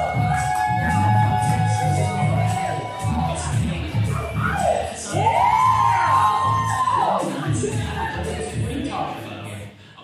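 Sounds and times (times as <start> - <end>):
pop music through pa system: 0.0 - 10.0.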